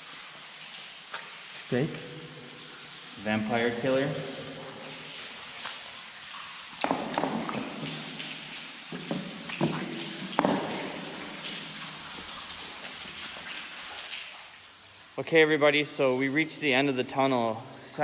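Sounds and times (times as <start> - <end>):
water dripping in tunnel: 0.0 - 18.0.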